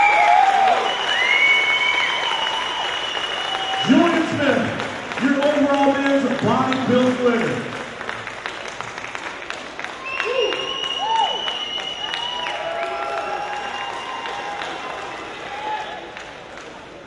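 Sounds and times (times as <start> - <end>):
long high whistle: 0.0 - 4.0, 10.0 - 14.5
whooping shouts: 0.0 - 4.2, 10.0 - 16.0
audience applauding and cheering: 0.0 - 17.0.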